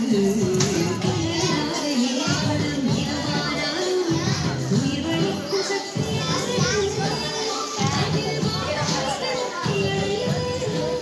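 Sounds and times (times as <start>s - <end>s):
children chattering and calling: 0.0s - 11.0s
music playing: 0.0s - 11.0s.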